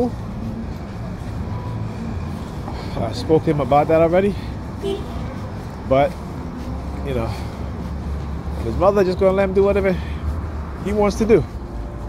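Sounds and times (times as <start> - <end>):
vehicle rumble: 0.0 - 12.0.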